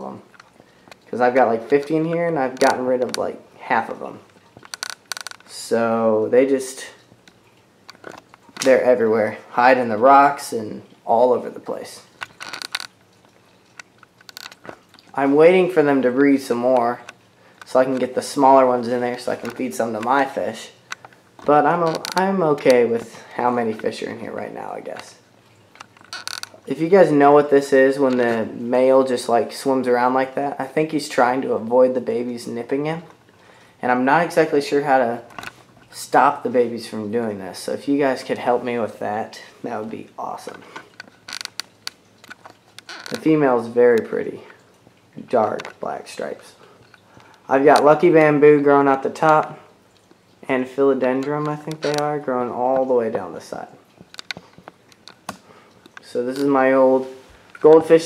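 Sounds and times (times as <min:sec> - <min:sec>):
faint clicks and crackles: 0:00.0 - 0:05.8, 0:06.6 - 0:31.5, 0:32.4 - 0:36.6, 0:37.6 - 0:58.0.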